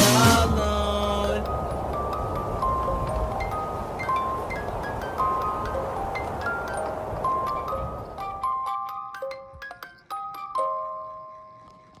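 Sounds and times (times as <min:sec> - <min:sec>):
bell-like chime chords: 0:01.1 - 0:12.0.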